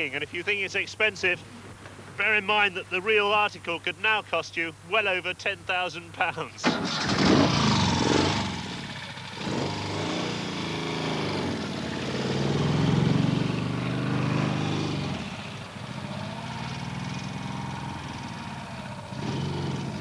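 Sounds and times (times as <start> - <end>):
three-wheeler engine accelerating: 6.6 - 20.0.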